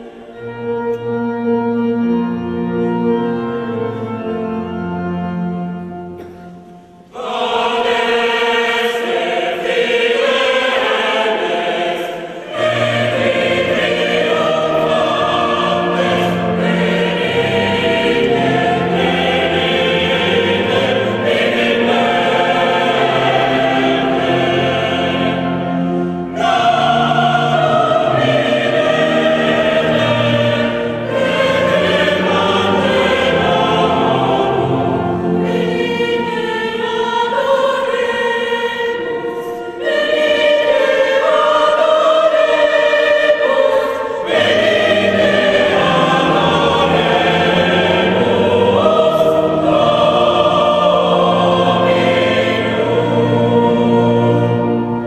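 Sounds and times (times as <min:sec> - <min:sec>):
choir singing: 0:00.0 - 0:55.0
low accompanying notes: 0:00.0 - 0:55.0.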